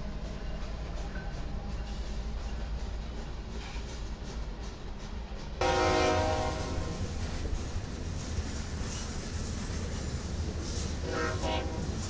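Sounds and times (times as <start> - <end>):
freight train rumbling past: 0.0 - 12.0
train horn blast: 5.6 - 7.1, 11.0 - 12.0.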